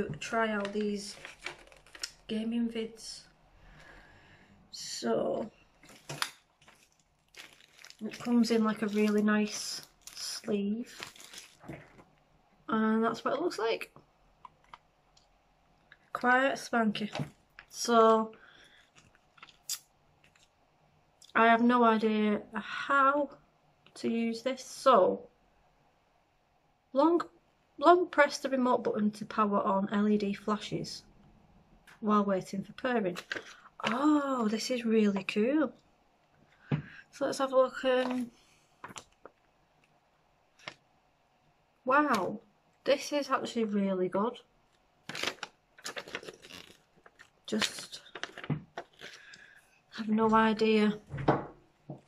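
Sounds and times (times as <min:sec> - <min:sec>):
paper crinkle: 0:00.5 - 0:02.3, 0:05.8 - 0:12.2, 0:18.4 - 0:20.5, 0:33.1 - 0:34.0, 0:45.0 - 0:49.6
paper rustling: 0:00.6 - 0:02.2, 0:05.8 - 0:12.1, 0:45.1 - 0:49.4.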